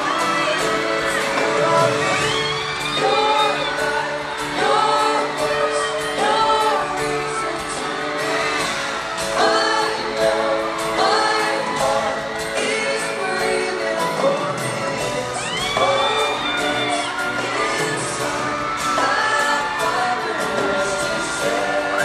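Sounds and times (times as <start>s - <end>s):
band accompaniment: 0.0s - 22.0s
male vocal group singing live: 0.0s - 22.0s.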